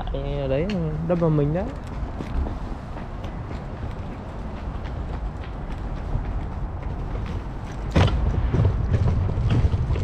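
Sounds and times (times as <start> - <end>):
low rumbling city background: 0.0 - 10.0.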